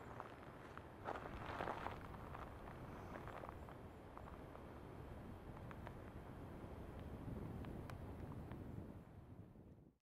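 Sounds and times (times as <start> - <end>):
footsteps crunching on gravel: 0.0 - 4.4.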